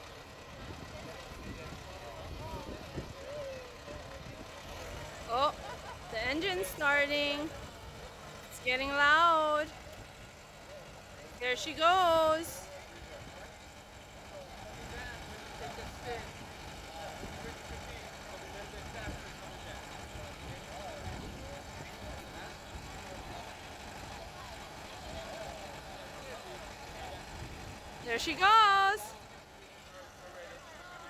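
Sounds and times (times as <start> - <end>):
faint voices: 0.0 - 31.0
tractor diesel engine running: 0.0 - 31.0.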